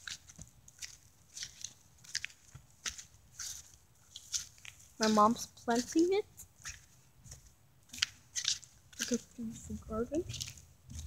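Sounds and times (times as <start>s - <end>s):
footsteps crunching on dry leaves: 0.0s - 11.0s.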